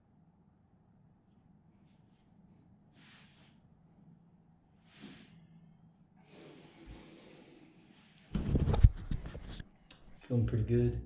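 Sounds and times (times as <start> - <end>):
faint hiss: 2.9 - 3.6, 4.8 - 5.6.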